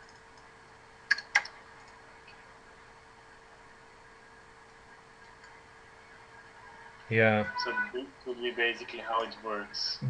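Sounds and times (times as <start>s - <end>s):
faint steady hiss: 0.0s - 10.0s
thin steady hum: 0.0s - 10.0s.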